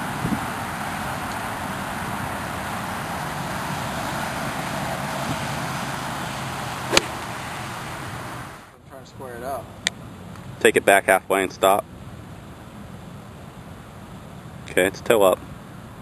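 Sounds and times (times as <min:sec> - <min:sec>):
steady rushing background noise: 0:00.0 - 0:16.0.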